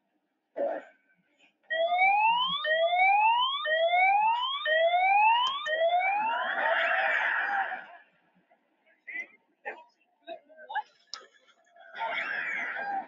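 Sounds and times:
rough noisy siren wail: 1.7s - 7.3s
cartoon siren whoop: 1.7s - 7.9s.

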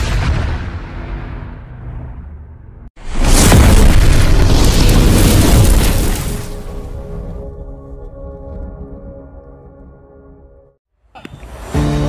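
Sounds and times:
explosion boom rumbling: 0.0s - 7.6s.

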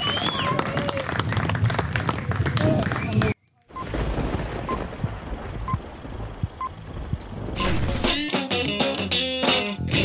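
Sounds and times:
low crackling rumble with pops: 3.8s - 7.6s.

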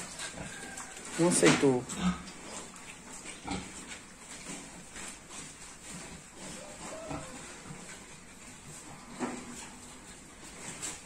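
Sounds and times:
pigs grunting: 0.0s - 4.0s, 6.0s - 8.1s.

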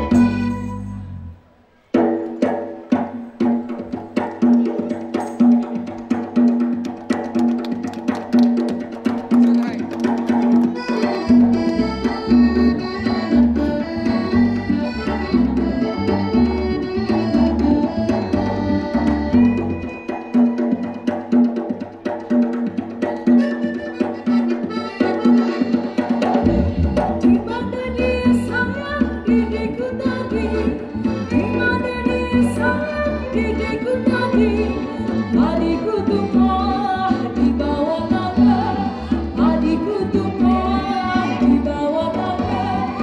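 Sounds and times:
accordion tones: 0.0s - 1.5s, 10.6s - 21.0s, 23.4s - 43.0s
live band dance music: 0.0s - 43.0s
sharp percussive strikes: 1.8s - 27.9s
hand drum beat: 2.0s - 43.0s.

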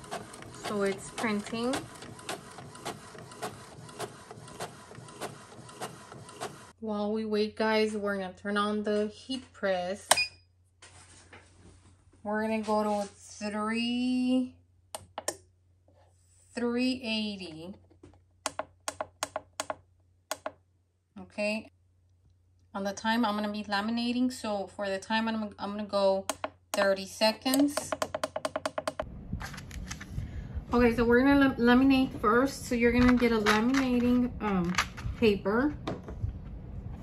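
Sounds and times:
inkjet printer printing: 0.0s - 6.8s.

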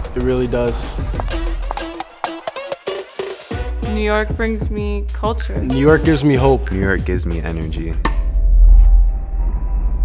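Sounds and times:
deep bass swell: 5.4s - 10.0s.

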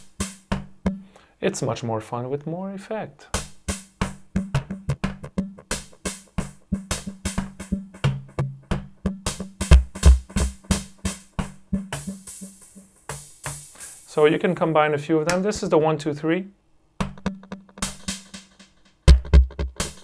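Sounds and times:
drum machine with tape echo: 0.0s - 1.0s, 3.4s - 14.1s, 17.0s - 20.0s.

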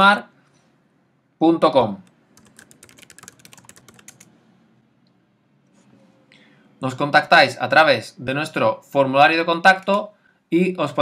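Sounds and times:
computer keyboard typing: 2.0s - 4.3s.

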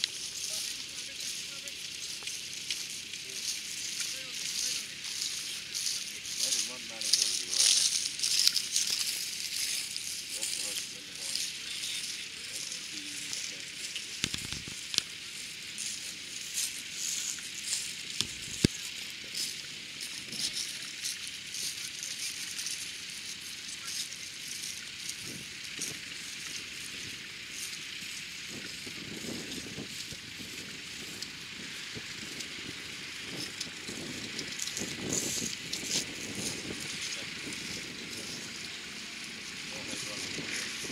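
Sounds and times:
harness chains and plough rattling: 0.0s - 40.9s
onlookers talking: 0.0s - 40.9s
steady high hiss: 0.0s - 40.9s.

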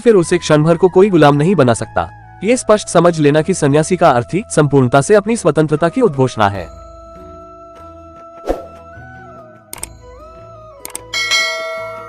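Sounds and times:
background music: 0.0s - 12.0s
bright bell chime: 9.8s - 12.0s.

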